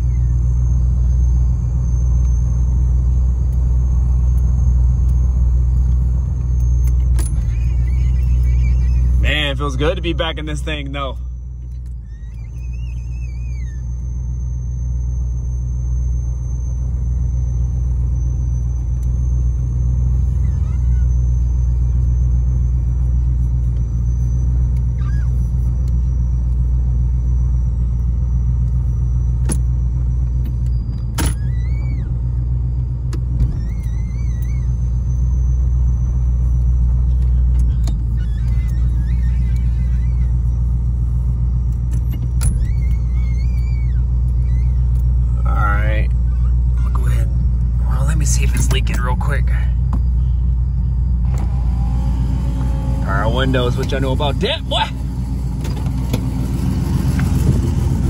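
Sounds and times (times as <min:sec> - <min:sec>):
car engine rumbling: 0:00.0 - 0:58.0
faint chirps: 0:05.6 - 0:09.6, 0:12.0 - 0:26.2.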